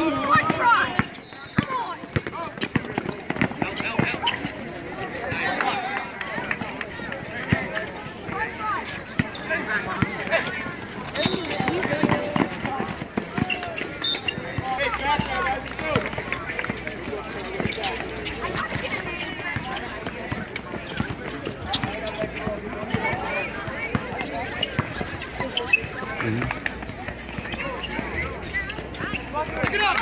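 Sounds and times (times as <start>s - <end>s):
spectators talking and calling out: 0.0s - 30.0s
basketball bouncing: 0.3s - 4.4s, 11.1s - 13.7s
running footsteps: 10.0s - 30.0s.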